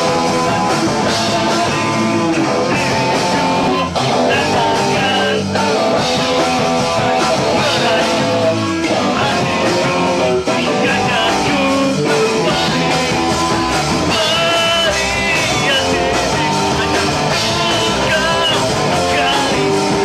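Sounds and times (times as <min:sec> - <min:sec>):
bass guitar: 0:00.0 - 0:20.0
drums: 0:00.0 - 0:20.0
electric guitar: 0:00.0 - 0:20.0
man singing: 0:00.0 - 0:20.0.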